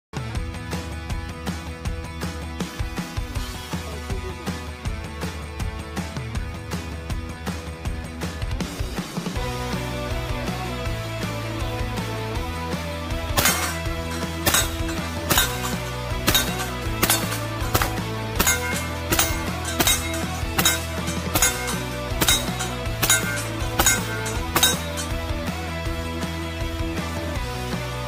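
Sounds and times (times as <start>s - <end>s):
rock guitar music: 12.6s - 28.0s
bullets clinking on steel target: 13.4s - 25.3s.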